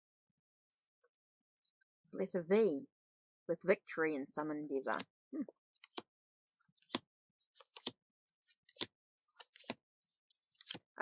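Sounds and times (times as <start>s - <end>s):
cards clicking on a pile: 7.6s - 8.0s, 8.7s - 9.8s.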